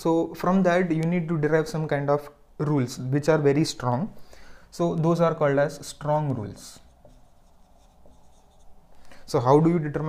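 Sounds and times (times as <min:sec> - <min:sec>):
marker writing on whiteboard: 0:05.9 - 0:09.1.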